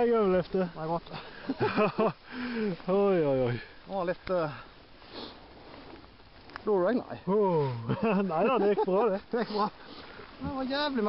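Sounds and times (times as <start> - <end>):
man laughing: 1.1 - 2.9, 7.2 - 9.8
short breathy hiss: 3.6 - 6.0, 9.5 - 10.4.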